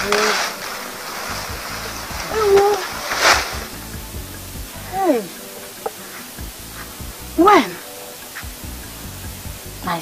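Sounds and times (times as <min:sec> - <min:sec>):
leafy branches rustling: 0:00.0 - 0:10.0
soft background music: 0:00.0 - 0:10.0.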